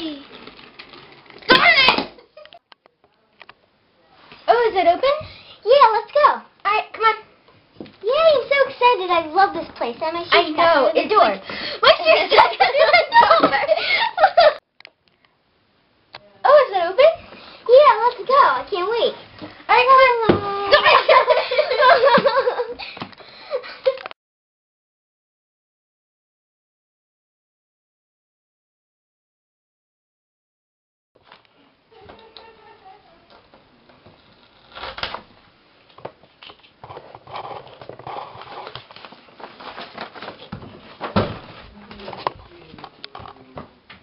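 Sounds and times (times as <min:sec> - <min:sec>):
girl's laugh-like sounds: 0:12.2 - 0:14.6, 0:20.7 - 0:24.1.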